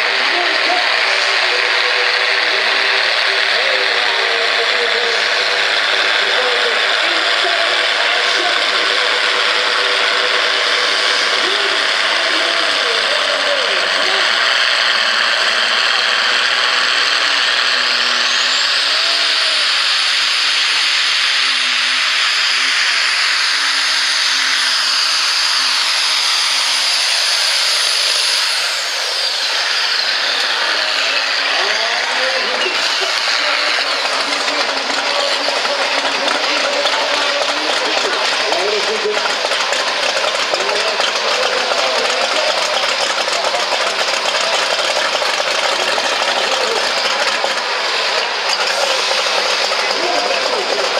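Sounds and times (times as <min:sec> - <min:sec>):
high engine whine: 0:00.0 - 0:50.9
tractor diesel engine at full power: 0:00.0 - 0:50.9.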